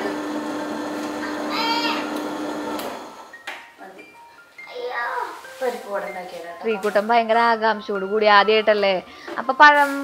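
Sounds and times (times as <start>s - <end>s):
wet grinder motor humming: 0.0s - 3.3s
child calling out: 1.3s - 2.2s, 4.7s - 5.4s.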